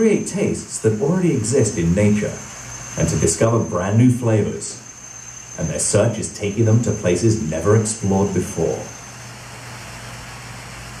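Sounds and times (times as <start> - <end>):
electric motors humming: 0.0 - 11.0
faint hiss: 0.0 - 11.0.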